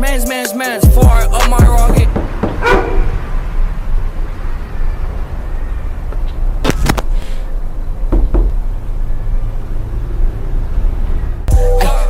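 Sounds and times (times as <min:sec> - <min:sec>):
sharp knocks: 0:01.6 - 0:03.3.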